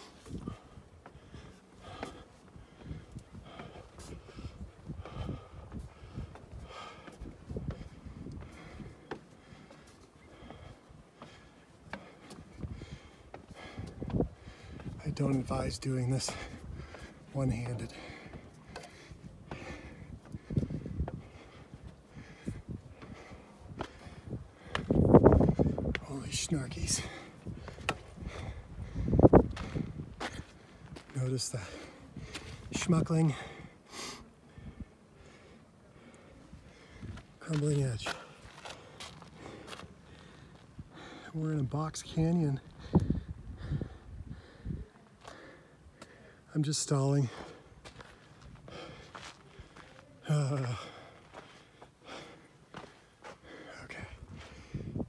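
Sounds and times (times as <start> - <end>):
footsteps on wooden ladder: 0.0 - 32.9, 37.1 - 40.7
heavy breathing: 0.0 - 55.0.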